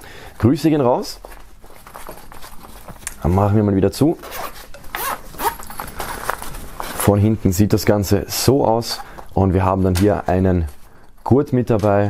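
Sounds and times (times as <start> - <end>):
zipper being pulled shut: 4.2 - 6.5.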